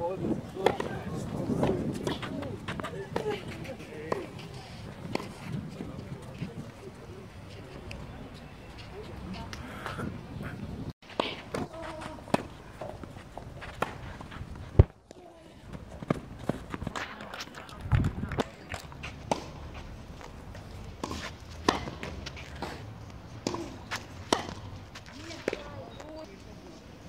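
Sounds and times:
tennis ball hits and bounces: 0:00.6 - 0:06.4, 0:11.1 - 0:14.1, 0:18.3 - 0:25.8.

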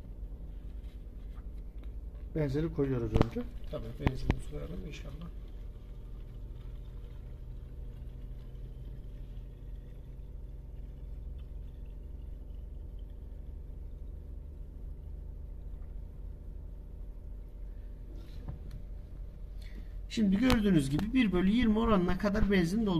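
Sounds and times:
steady low hum: 0:00.0 - 0:22.9
liquid trickling into bottle: 0:03.1 - 0:14.8.

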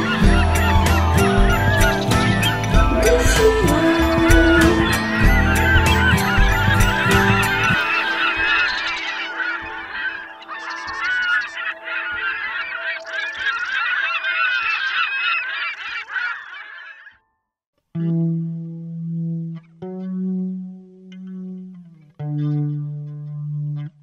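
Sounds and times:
seabirds calling: 0:00.0 - 0:17.2.

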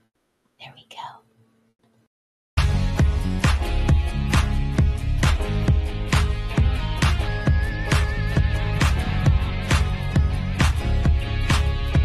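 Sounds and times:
woman whispering: 0:00.6 - 0:01.3.

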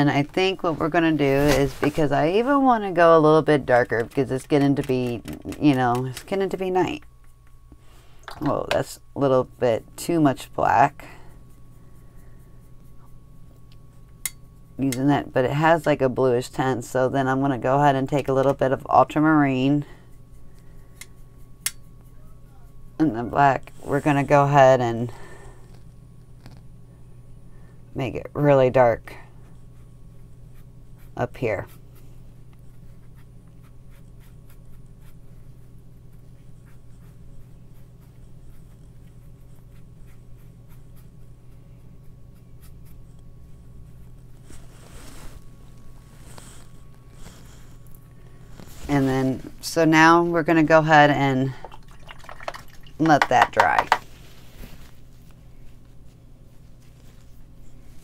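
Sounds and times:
faint low hum: 0:00.0 - 0:58.0
brush scratching on paper: 0:29.4 - 0:50.1
paintbrush mixing watercolour: 0:47.1 - 0:54.0.

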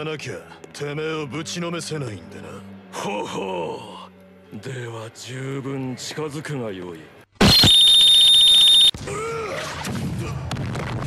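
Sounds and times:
high buzzing alarm tone: 0:07.4 - 0:08.9.

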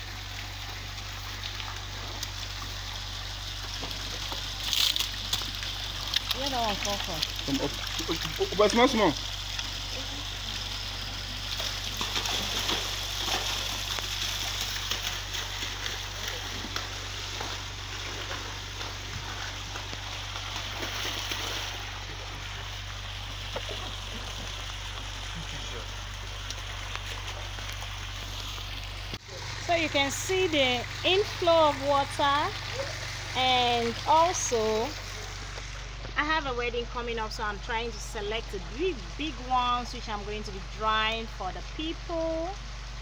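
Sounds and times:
water splashing into pond: 0:00.0 - 0:43.0.

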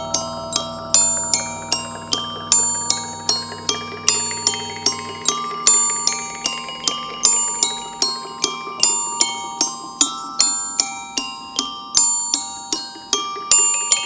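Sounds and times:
glockenspiel struck with mallets: 0:00.0 - 0:14.0
held lower tones: 0:00.0 - 0:14.0.

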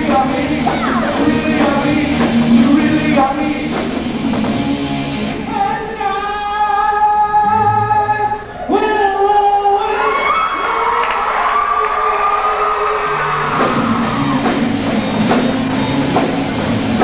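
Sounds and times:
live rock band playing: 0:00.0 - 0:06.5, 0:12.6 - 0:17.0.

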